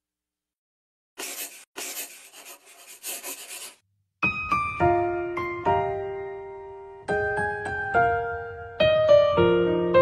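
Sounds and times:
scratchy rasping noise: 1.2 - 3.8.

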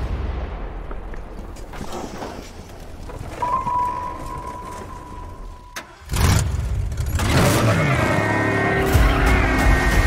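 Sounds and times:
steady high ringing tone: 3.3 - 5.8.

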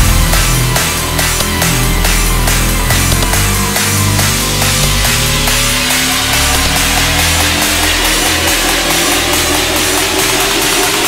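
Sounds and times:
deep bass: 0.0 - 11.0
dubstep track: 0.0 - 11.0
gritty synth noise: 0.0 - 11.0.

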